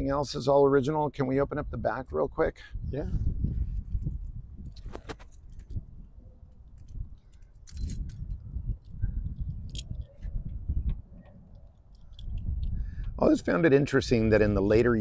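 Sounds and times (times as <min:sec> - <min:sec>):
keys jangling: 0:06.6 - 0:10.3, 0:11.5 - 0:12.8.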